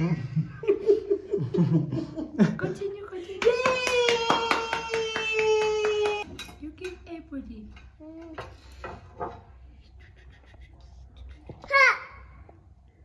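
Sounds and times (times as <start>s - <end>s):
high held voiced cheer: 3.4s - 6.2s
quick hand clapping: 3.4s - 6.3s.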